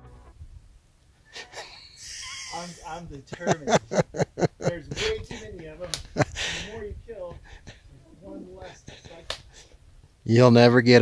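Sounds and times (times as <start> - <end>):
man's voice: 4.6 - 9.3.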